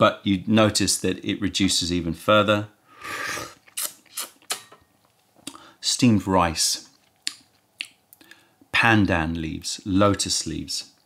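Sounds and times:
person slurping tea: 3.0s - 4.7s
mouth clicks and smacks: 3.3s - 4.8s, 5.4s - 5.6s, 6.9s - 8.4s.

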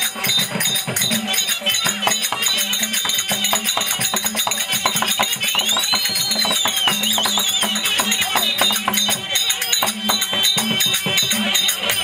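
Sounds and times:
hand drums: 0.0s - 12.0s
jingling percussion: 0.0s - 12.0s.

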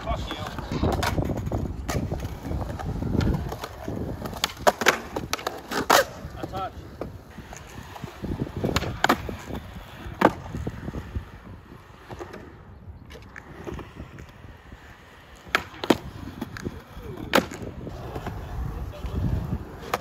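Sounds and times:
skateboard clacks: 0.0s - 20.0s
skateboard wheels rolling on concrete: 0.0s - 20.0s.

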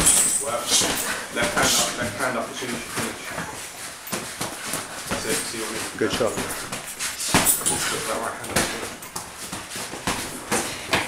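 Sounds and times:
gloved punches and footwork: 0.0s - 2.0s, 2.8s - 11.0s.

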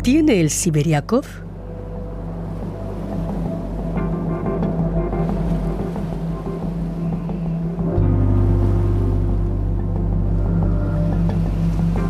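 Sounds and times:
sustained background music: 0.0s - 12.0s.

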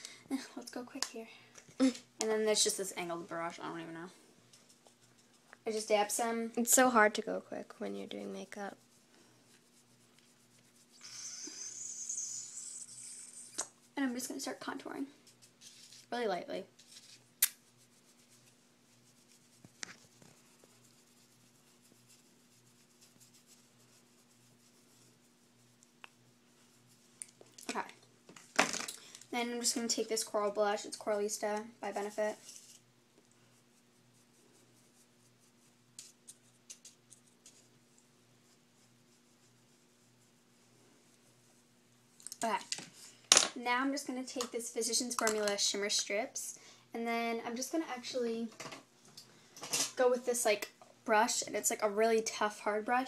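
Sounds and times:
low steady hum: 0.0s - 53.0s
makeup brush strokes on skin: 2.3s - 27.9s, 29.4s - 41.8s
makeup brush hissing: 9.2s - 13.8s.

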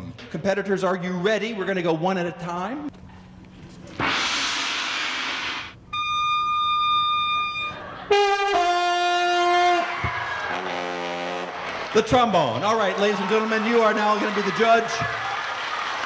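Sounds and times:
oboe holding high note: 6.0s - 11.5s
trombone playing brassy notes: 8.1s - 11.6s.

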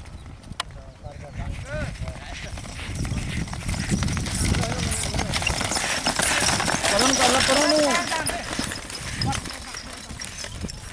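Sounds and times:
hoofbeats on dirt: 0.0s - 10.9s.

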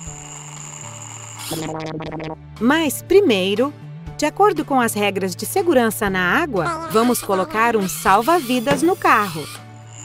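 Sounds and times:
buzzing sound effect: 0.0s - 2.4s
soft cartoon background music: 0.0s - 10.0s.

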